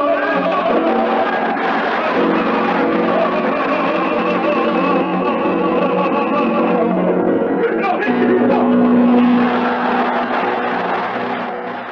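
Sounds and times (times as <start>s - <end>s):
full ensemble playing: 0.0s - 11.9s.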